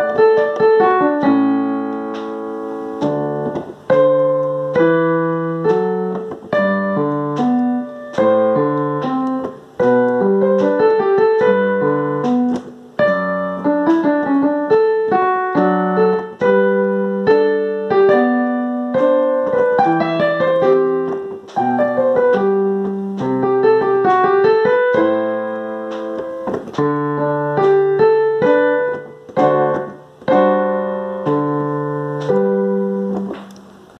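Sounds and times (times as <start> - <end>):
slow gentle piano: 0.0 - 34.0.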